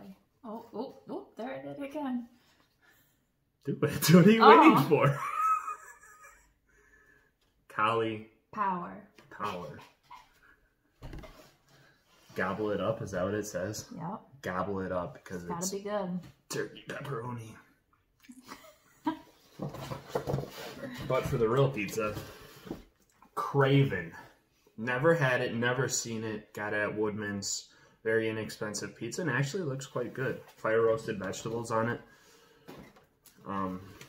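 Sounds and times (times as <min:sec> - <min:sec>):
people talking: 0:00.0 - 0:02.3, 0:03.7 - 0:05.2, 0:12.4 - 0:17.6, 0:20.9 - 0:22.2, 0:33.5 - 0:33.9
people laughing: 0:04.5 - 0:06.5.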